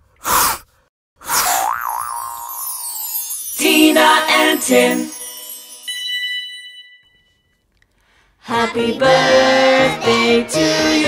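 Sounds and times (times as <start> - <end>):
springy cartoon boing: 1.5 - 2.6.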